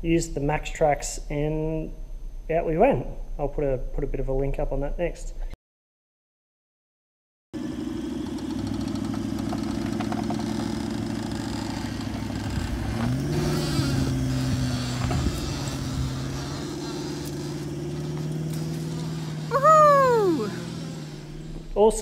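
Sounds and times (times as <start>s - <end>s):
engine under load: 7.6s - 22.0s.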